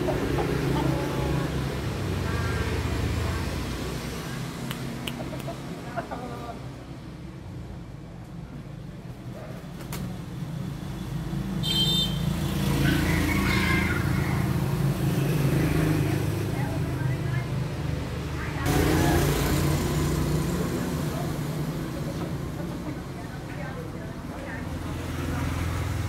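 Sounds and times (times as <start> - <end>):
vehicle engines rumbling: 0.0 - 26.0.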